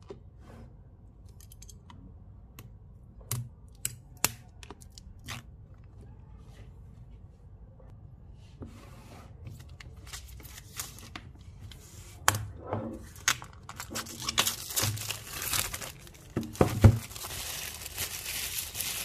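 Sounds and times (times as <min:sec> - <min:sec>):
plastic film rustling and tearing: 0:13.1 - 0:19.0.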